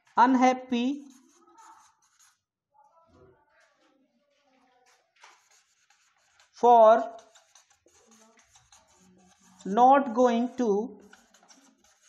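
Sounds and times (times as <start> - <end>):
marker scratching on whiteboard: 0.0 - 2.5, 3.7 - 12.0.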